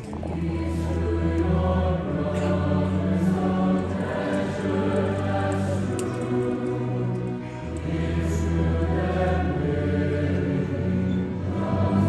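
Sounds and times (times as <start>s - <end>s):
choir singing held chords: 0.0s - 12.0s.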